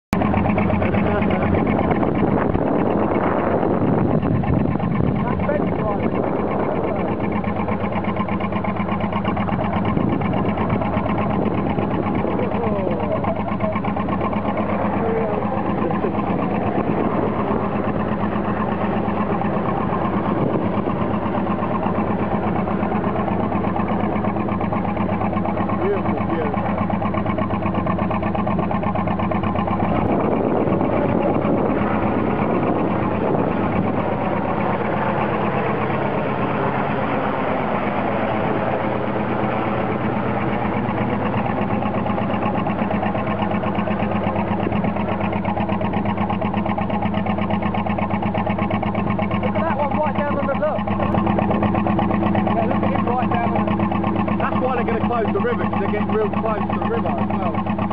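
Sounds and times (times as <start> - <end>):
boat diesel engine running: 0.0 - 57.9.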